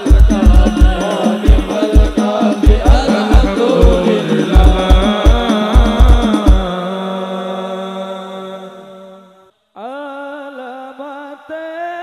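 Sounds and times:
chanted religious song: 0.0 - 12.0.

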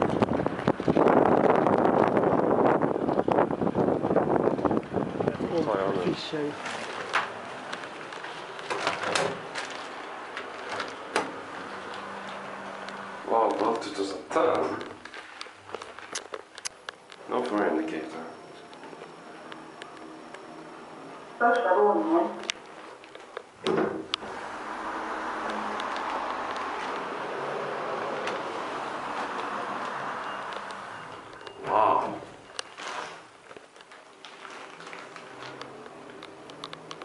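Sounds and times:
elevator cab running: 0.0 - 15.4, 17.0 - 37.0.

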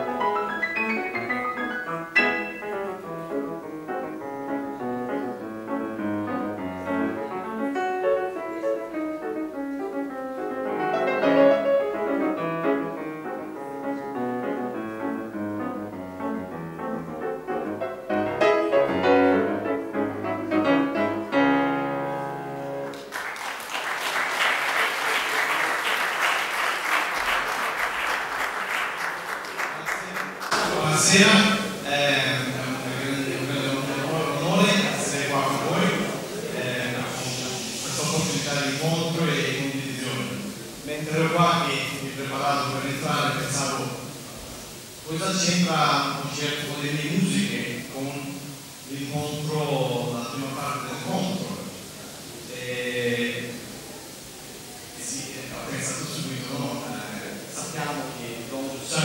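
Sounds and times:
solo piano piece: 0.0 - 23.0
audience applause: 22.8 - 40.9.

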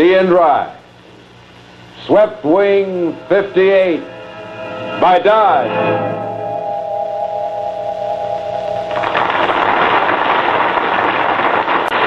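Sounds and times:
held music chord: 2.0 - 10.0
faint crackle: 8.4 - 12.0.

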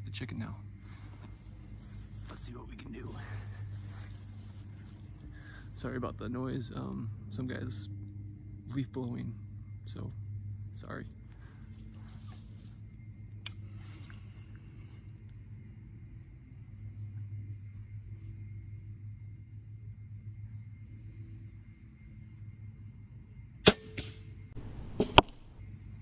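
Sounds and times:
distant leaf blower drone: 0.0 - 26.0
crossbow firing snap: 23.6 - 25.6
sharp knock: 24.6 - 25.5.

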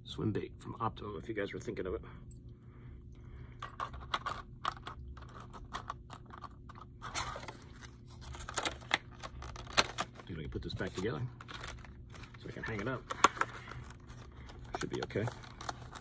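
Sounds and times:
plastic packaging crinkling: 3.7 - 16.0.

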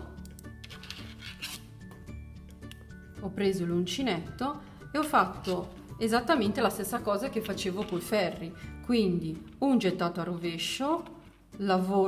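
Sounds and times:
soft background music: 0.0 - 12.0
yarn handling scratches: 0.6 - 1.7.

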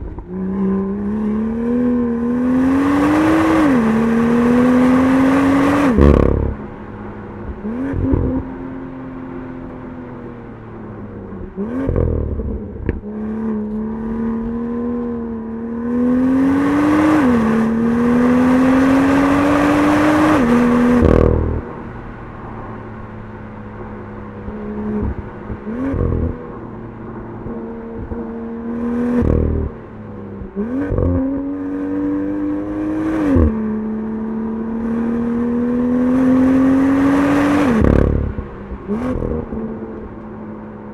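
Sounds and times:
car engine accelerating through gears: 0.0 - 6.8, 7.4 - 40.9.

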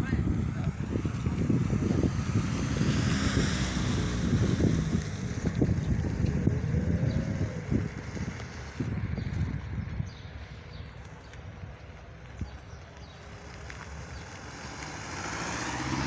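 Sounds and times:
vehicle passing: 0.0 - 16.0
wind buffeting microphone: 0.0 - 16.0.

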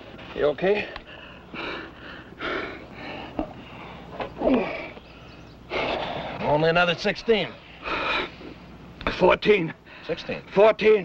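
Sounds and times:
man breathing hard: 0.8 - 6.4, 7.6 - 8.7.

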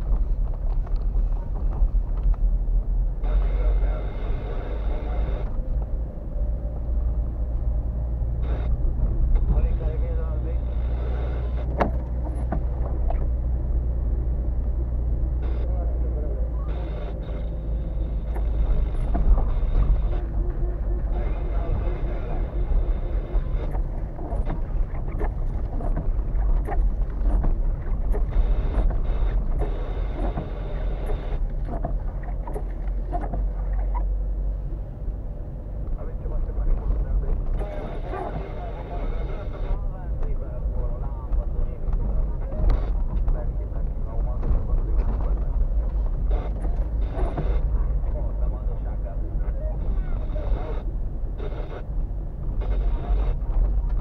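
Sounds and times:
engine and tyre rumble: 0.0 - 54.0
car knocks and rattles: 11.6 - 13.4, 23.7 - 33.9.

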